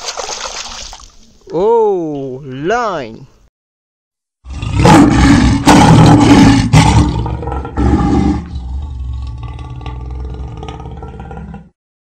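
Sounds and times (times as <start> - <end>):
lion roaring: 4.4 - 11.8.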